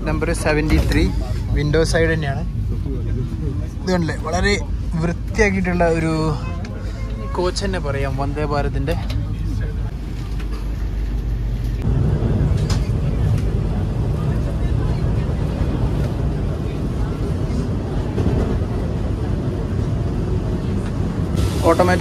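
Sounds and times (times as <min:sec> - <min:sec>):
train rumble from inside coach: 0:00.0 - 0:22.0.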